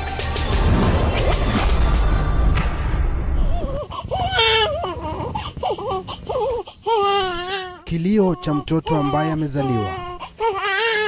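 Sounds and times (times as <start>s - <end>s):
newborn baby crying: 3.4s - 11.0s.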